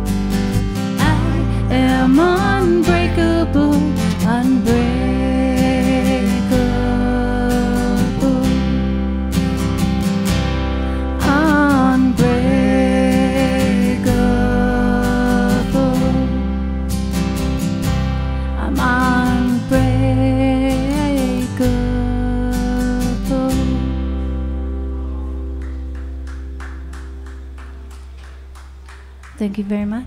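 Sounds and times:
strummed acoustic guitar: 0:00.0 - 0:28.8
woman singing long notes: 0:01.0 - 0:08.8, 0:11.2 - 0:16.4.

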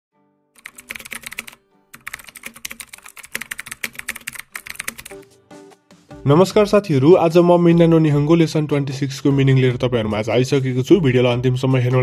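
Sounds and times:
soft background music: 0:00.2 - 0:12.0
keyboard typing clicks: 0:00.6 - 0:05.2.

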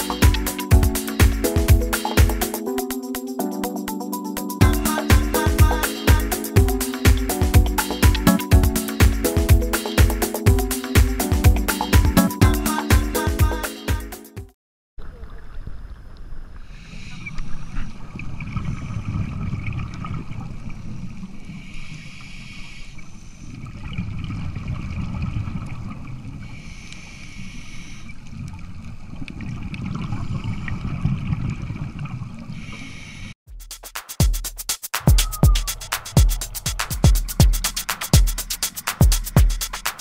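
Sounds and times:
music: 0:00.0 - 0:14.6, 0:33.5 - 0:40.0
low rumbling water noise: 0:17.5 - 0:21.6, 0:23.6 - 0:26.6.

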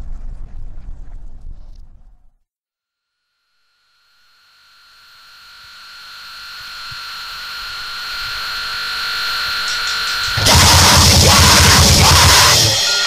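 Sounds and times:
harsh noise hiss: 0:04.1 - 0:13.0
high whistling tones: 0:06.2 - 0:13.0.

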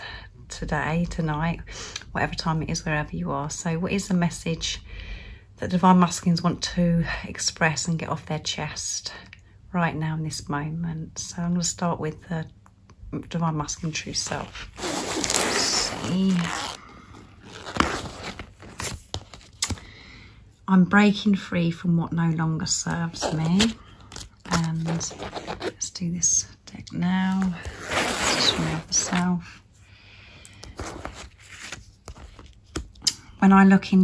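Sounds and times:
cards sliding and rustling: 0:17.3 - 0:19.9, 0:30.6 - 0:32.9.

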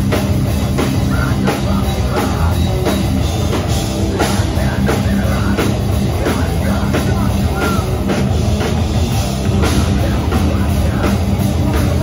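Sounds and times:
bass guitar: 0:00.0 - 0:12.0
distorted electric guitar: 0:00.0 - 0:12.0
drum kit: 0:00.0 - 0:12.0.

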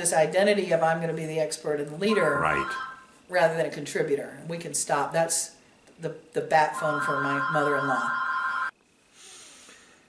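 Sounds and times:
woman speaking: 0:00.0 - 0:08.2
telephone two-tone ring: 0:02.1 - 0:03.0, 0:06.8 - 0:08.7.

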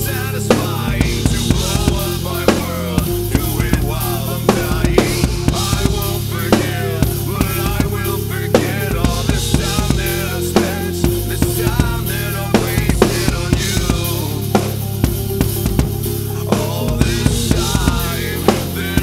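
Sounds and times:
backing track bass and melody: 0:00.0 - 0:19.0
drum kit rock beat: 0:00.0 - 0:19.0.

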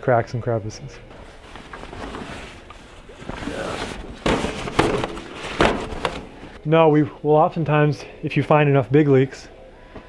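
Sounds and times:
fabric rustling: 0:01.1 - 0:06.6.

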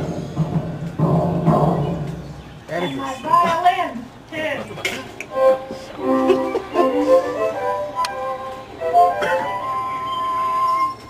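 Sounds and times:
violin and flute tune: 0:05.3 - 0:11.0.

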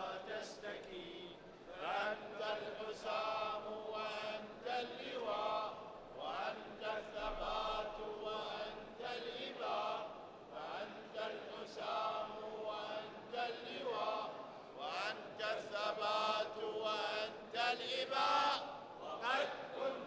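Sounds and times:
men chanting: 0:00.0 - 0:20.0.

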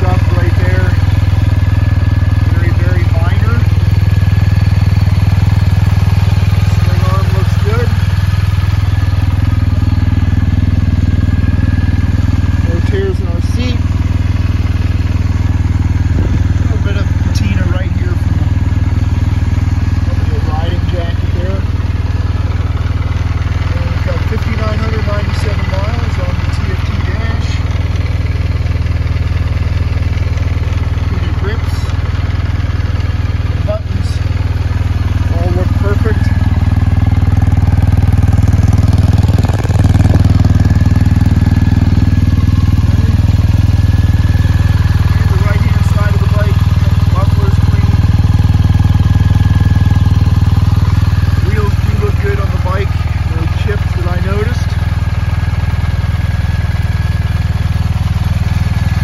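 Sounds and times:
motorcycle engine idling: 0:00.0 - 0:59.0.

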